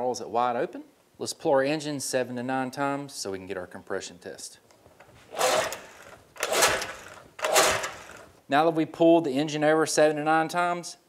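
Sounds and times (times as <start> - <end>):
recoil starter pull whirring: 5.0 - 8.4.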